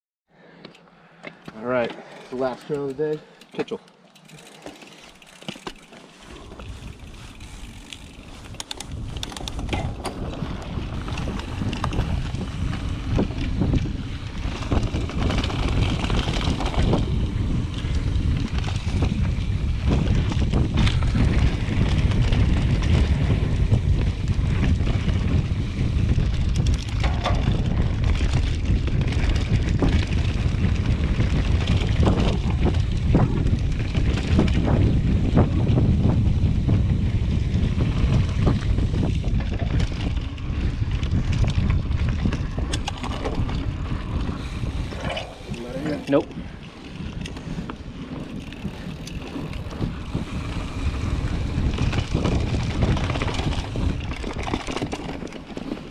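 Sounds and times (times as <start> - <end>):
bike clicks and rattles: 0.4 - 55.9
tyres rumbling on dirt trail: 1.4 - 55.9
wind buffeting microphone: 5.7 - 55.9.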